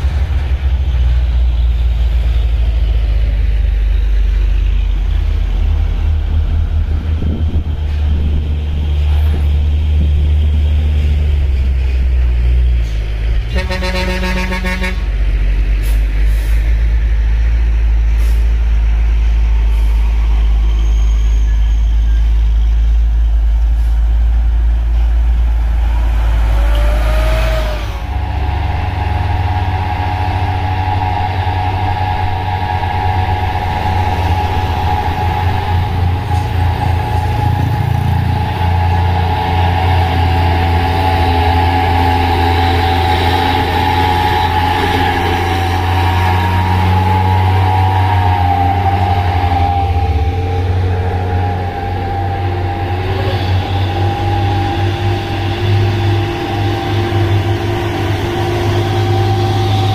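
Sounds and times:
diesel truck engines rumbling: 0:00.0 - 0:59.9
truck engine pulling uphill: 0:00.0 - 0:59.9
steady whine: 0:24.4 - 0:59.9.

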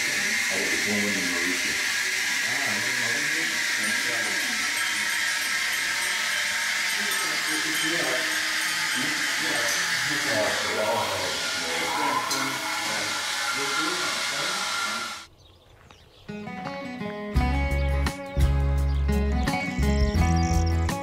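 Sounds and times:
indistinct voices talking: 0:00.0 - 0:15.3
loud steady hiss: 0:00.0 - 0:15.3.

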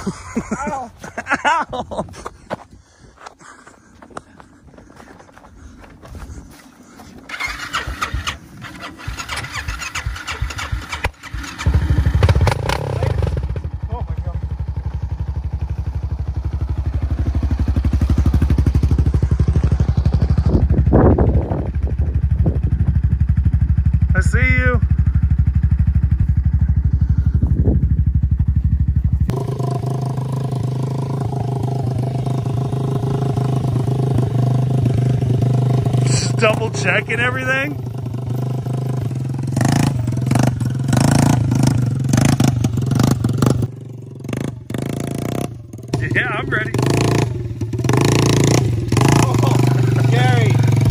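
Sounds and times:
dirt bike engine idling: 0:00.0 - 0:50.9
quad engine running: 0:07.1 - 0:50.9.

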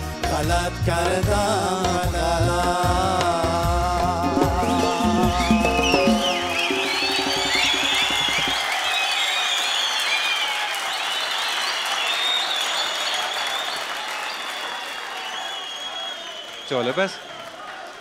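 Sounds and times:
band chord ringing out: 0:04.3 - 0:08.5
audience applauding: 0:04.5 - 0:18.0
high whistles: 0:04.6 - 0:17.0.

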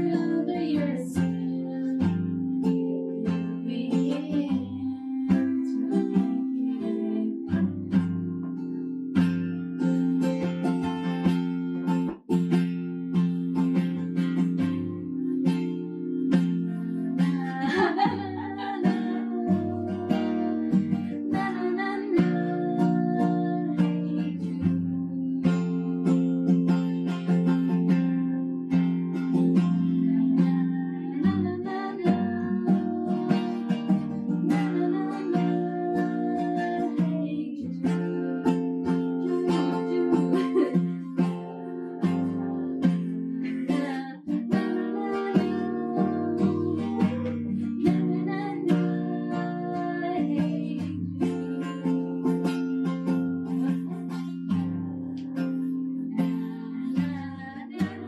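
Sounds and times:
person singing: 0:00.0 - 0:08.3, 0:14.0 - 0:58.0
acoustic guitar strumming chords: 0:00.0 - 0:58.0.

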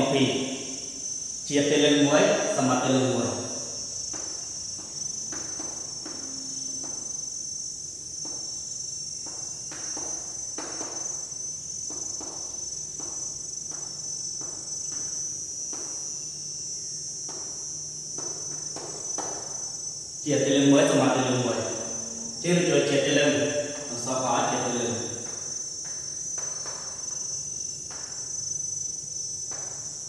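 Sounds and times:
high-pitched drone: 0:20.3 - 0:25.3.

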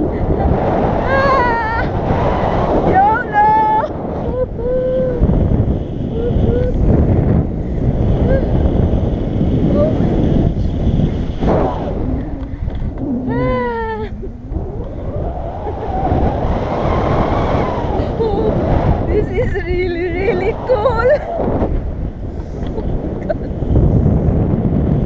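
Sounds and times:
wind buffeting microphone: 0:00.0 - 0:25.0
person crying out: 0:13.2 - 0:14.4.

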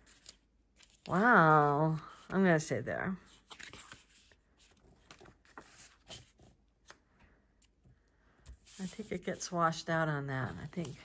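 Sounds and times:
photo prints rustling: 0:00.0 - 0:07.0.

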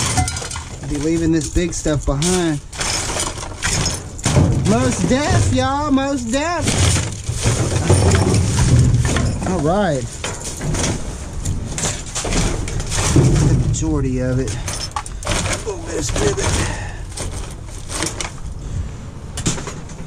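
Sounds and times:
hands rummaging through trash: 0:00.0 - 0:18.5
person speaking: 0:04.6 - 0:06.9, 0:15.5 - 0:17.1.

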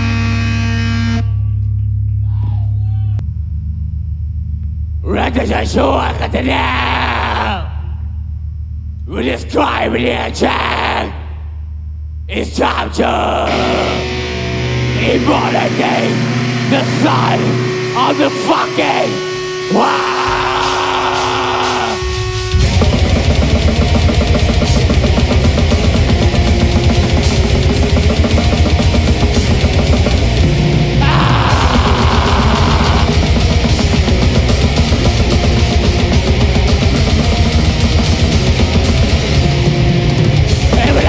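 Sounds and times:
distorted electric guitars chord: 0:00.0 - 0:01.7, 0:13.4 - 0:41.0
low bass drone: 0:00.0 - 0:02.3, 0:03.2 - 0:09.2, 0:13.5 - 0:41.0.

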